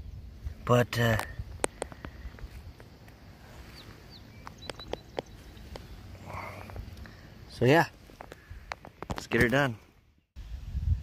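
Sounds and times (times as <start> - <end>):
wind on microphone: 1.3 - 2.8, 10.4 - 11.0
footsteps on dry soil: 1.7 - 6.8.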